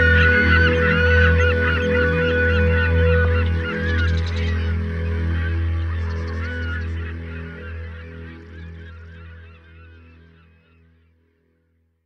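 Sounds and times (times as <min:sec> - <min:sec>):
flock of birds calling: 0:00.0 - 0:11.0.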